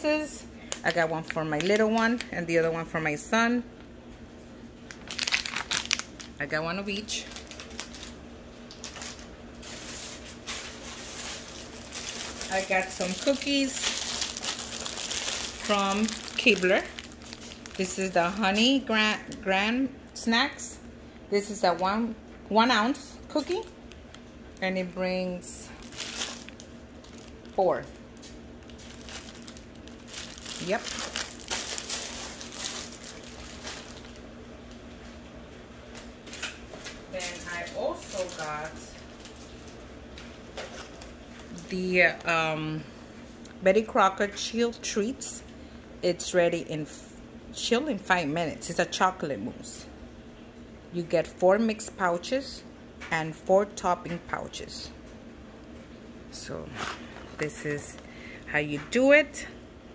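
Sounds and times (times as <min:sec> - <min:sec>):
plastic packets crinkling: 0:00.6 - 0:02.4, 0:04.9 - 0:20.2, 0:25.4 - 0:35.2, 0:35.9 - 0:42.3.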